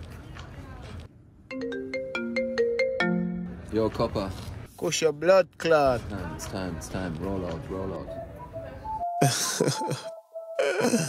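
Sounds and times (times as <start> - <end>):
smartphone ringtone melody: 1.5 - 3.7, 8.0 - 11.0.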